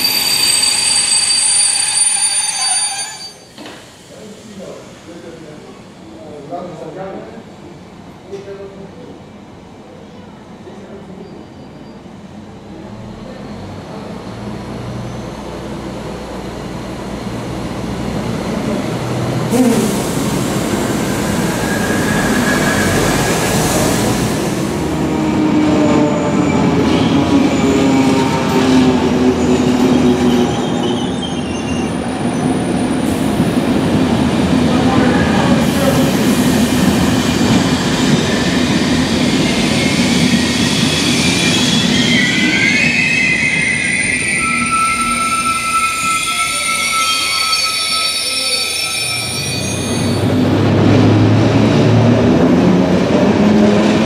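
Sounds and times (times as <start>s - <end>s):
high wheel squeal: 0.0s - 4.7s, 19.5s - 23.8s, 26.0s - 33.2s, 35.3s - 50.4s
train rolling rumble: 3.5s - 43.5s, 49.7s - 54.0s.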